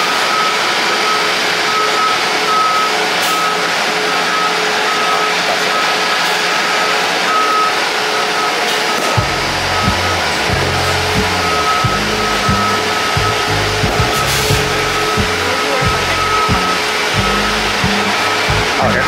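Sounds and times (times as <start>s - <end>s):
buses idling and moving: 0.0s - 19.0s
bass-heavy music with steady beat: 9.2s - 19.0s
high electronic beep: 9.2s - 19.0s.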